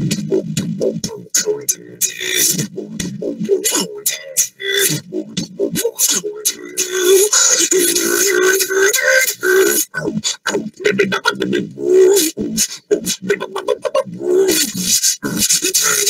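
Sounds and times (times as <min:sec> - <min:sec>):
beatboxing drum strikes: 0:00.0 - 0:16.0
wavering vocal tone: 0:00.0 - 0:16.0.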